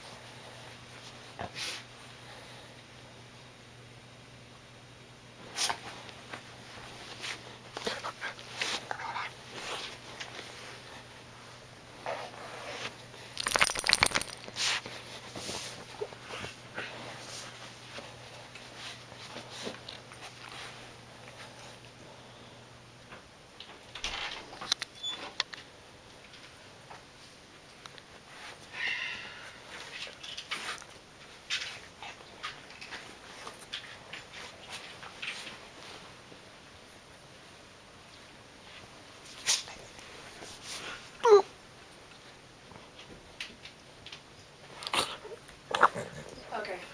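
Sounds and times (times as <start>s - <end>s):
dog sniffing and snuffling: 0.5s - 2.7s, 5.5s - 11.2s, 12.0s - 21.9s.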